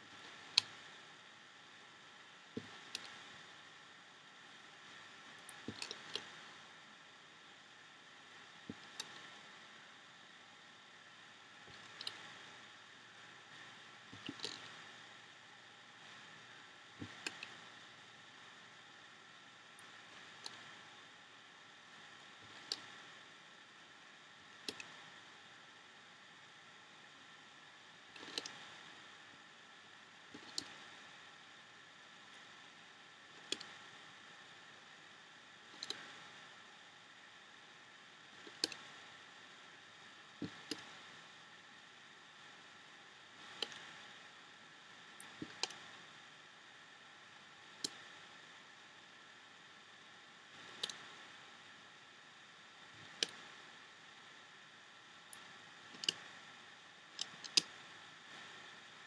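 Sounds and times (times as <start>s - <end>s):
faint steady hiss: 0.0s - 59.0s.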